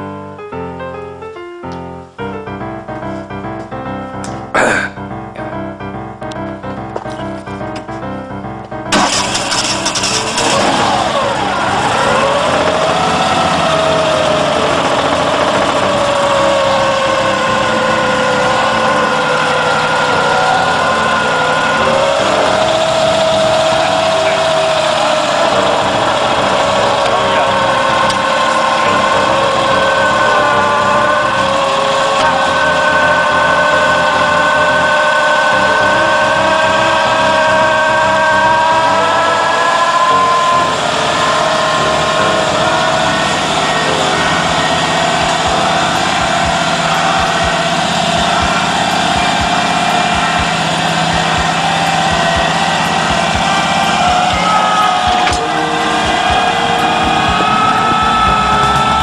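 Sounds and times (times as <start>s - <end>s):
small engine starting and running: 8.9s - 59.0s.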